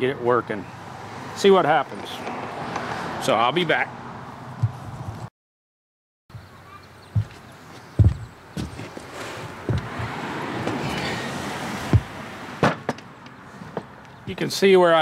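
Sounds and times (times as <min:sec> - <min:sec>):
tools knocking on wooden workbench: 0:08.0 - 0:08.9, 0:09.7 - 0:10.1.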